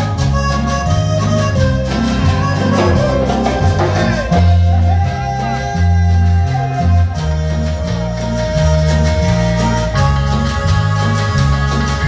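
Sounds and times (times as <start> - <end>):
accordion melody: 0.0 - 12.0
electric bass: 0.0 - 12.0.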